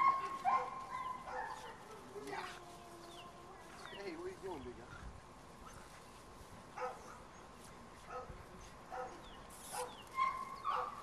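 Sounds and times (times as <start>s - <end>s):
puppies yipping and barking: 0.0s - 2.3s, 8.9s - 11.0s.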